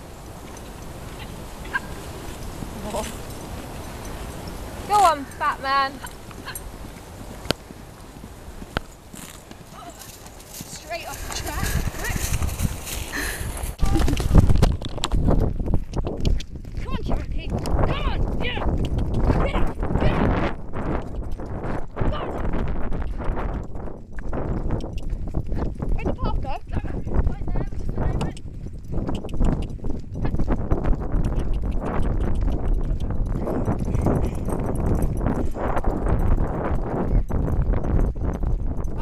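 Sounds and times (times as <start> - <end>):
hoofbeats on grass: 0.0 - 39.0.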